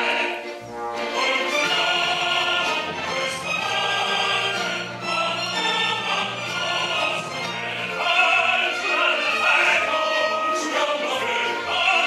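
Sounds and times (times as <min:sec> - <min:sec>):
opera singers and chorus: 0:00.0 - 0:12.0
orchestral accompaniment: 0:00.0 - 0:12.0.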